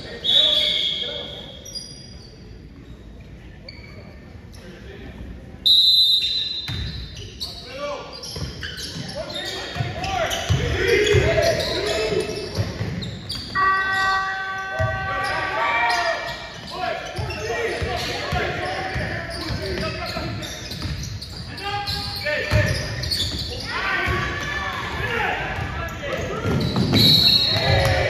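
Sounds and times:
referee's whistle: 0:00.1 - 0:02.1, 0:05.6 - 0:07.6, 0:26.6 - 0:28.0.

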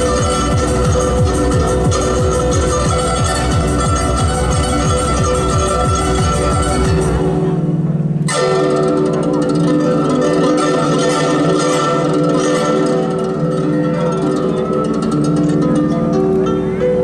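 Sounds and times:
plucked zither notes: 0:00.0 - 0:17.0.

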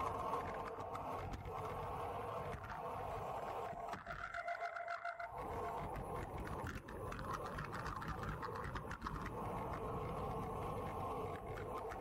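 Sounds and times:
wind rushing over microphone: 0:00.0 - 0:04.2, 0:05.3 - 0:12.0
bicycle road noise: 0:00.0 - 0:12.0.

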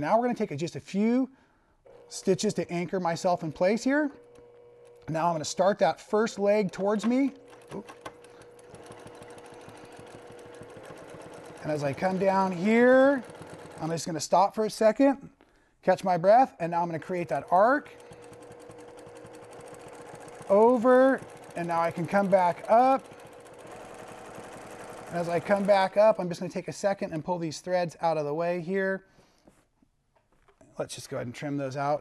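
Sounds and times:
sewing machine stitching: 0:01.9 - 0:15.0, 0:16.6 - 0:26.6.

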